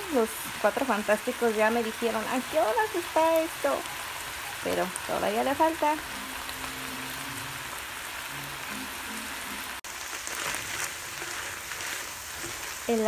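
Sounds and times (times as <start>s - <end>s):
meat and vegetables sizzling in skillet: 0.0s - 13.0s.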